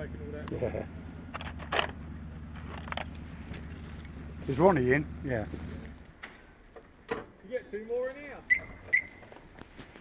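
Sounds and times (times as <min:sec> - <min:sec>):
light metallic jingling: 0:01.4 - 0:04.7.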